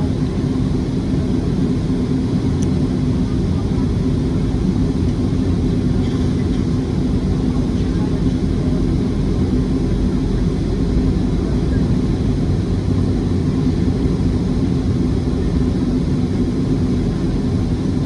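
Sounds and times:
jet engines rumbling in cabin: 0.0s - 18.0s.

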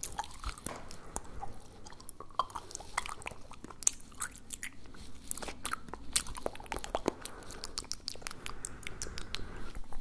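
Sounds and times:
lip smacks and pops: 0.0s - 10.0s
wet mouth and tongue clicks: 0.0s - 10.0s.

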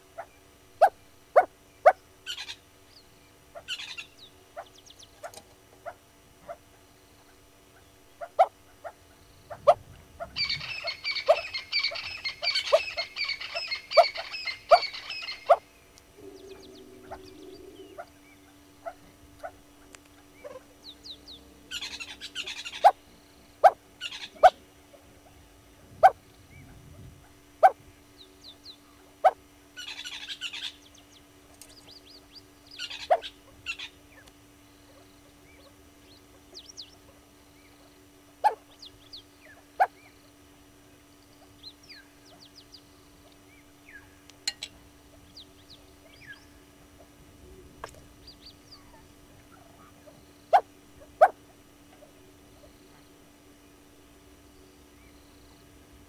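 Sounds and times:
wild birds chattering: 0.0s - 55.8s
low steady hum: 0.0s - 56.0s.

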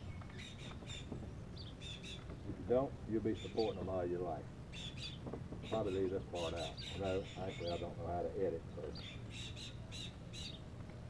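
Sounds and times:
bird calling: 0.0s - 2.6s, 3.2s - 4.1s, 4.7s - 10.7s.

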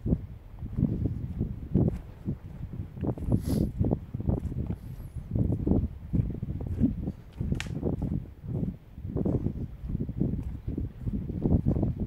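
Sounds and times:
footsteps on mud: 0.1s - 12.0s.

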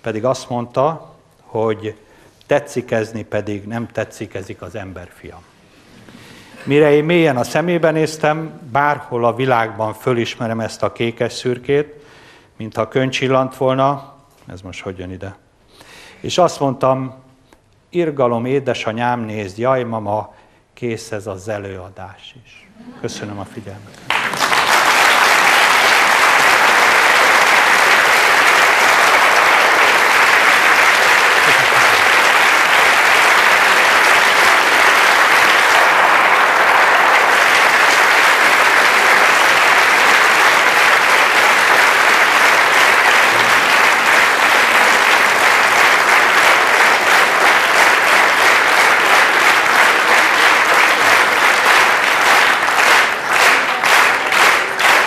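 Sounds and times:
audience applauding: 24.0s - 55.0s
rhythmic clapping: 24.0s - 55.0s.

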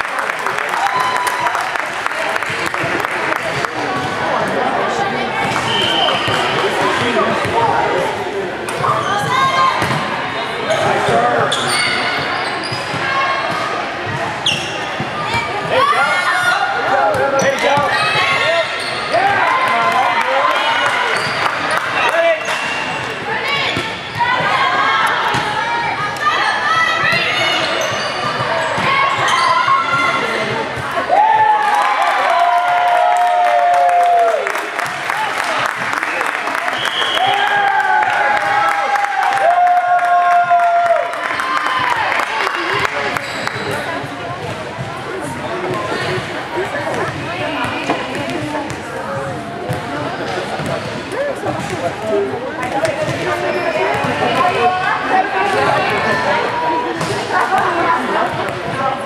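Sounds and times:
ball hits and bounces: 8.7s - 10.1s
people calling and shouting: 41.3s - 59.0s.

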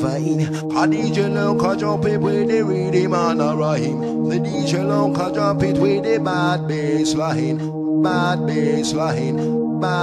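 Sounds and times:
chanted vocal sample: 0.0s - 10.0s.

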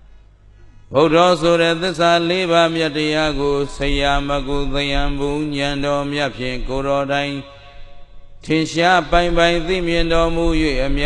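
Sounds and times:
monk chanting: 0.9s - 11.0s.

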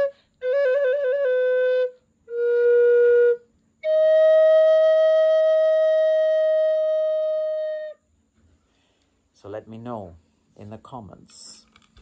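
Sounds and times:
wooden flute playing: 0.0s - 8.0s
breath: 8.4s - 9.3s.

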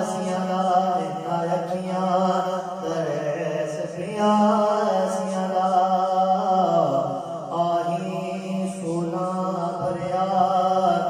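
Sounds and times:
man singing unaccompanied: 0.0s - 11.0s.

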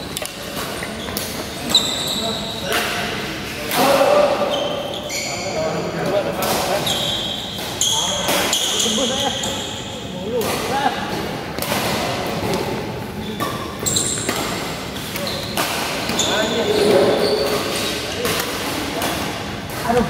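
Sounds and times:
shoes squeaking on court: 0.0s - 2.7s, 4.4s - 5.6s, 6.6s - 9.9s, 13.2s - 18.4s
rackets hitting shuttlecock: 13.4s - 16.4s.

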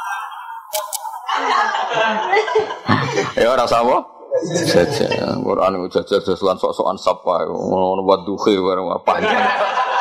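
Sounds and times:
people laughing: 0.0s - 3.6s, 9.1s - 10.0s.

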